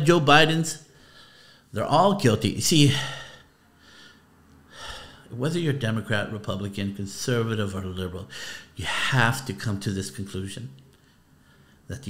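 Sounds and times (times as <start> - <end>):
man breathing: 0.9 - 1.7, 2.9 - 5.3, 8.3 - 8.8, 10.9 - 11.9.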